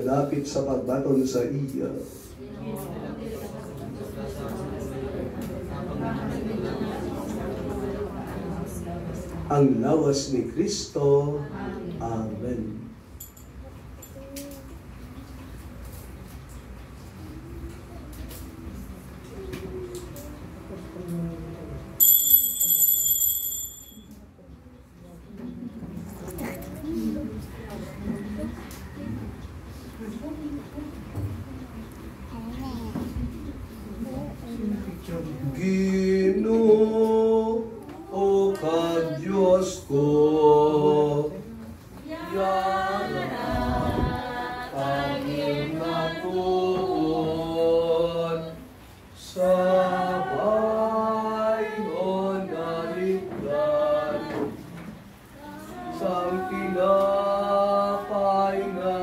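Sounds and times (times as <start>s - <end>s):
unaccompanied hymn singing: 2.4s - 13.0s, 35.1s - 59.0s
high bell-like ringing chime: 22.0s - 24.2s.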